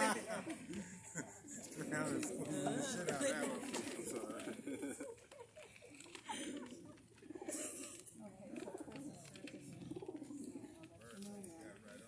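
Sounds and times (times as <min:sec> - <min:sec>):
doves cooing: 0:00.0 - 0:12.0
murmured talk: 0:00.0 - 0:12.0.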